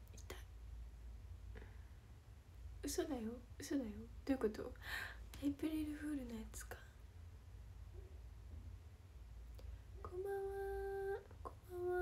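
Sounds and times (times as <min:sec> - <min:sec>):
steady low hum: 0:00.0 - 0:12.0
woman whispering: 0:00.1 - 0:00.5, 0:02.9 - 0:07.0.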